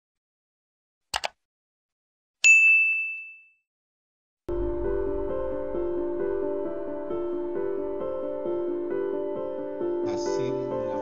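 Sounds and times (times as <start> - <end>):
mouse clicks: 1.1 - 1.4
bright bell-like ding: 2.4 - 3.6.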